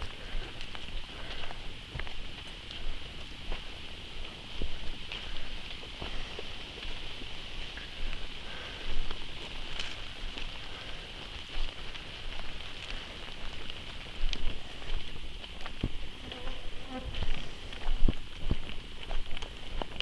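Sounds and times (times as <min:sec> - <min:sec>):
footsteps on leafy dirt trail: 0:00.0 - 0:20.0.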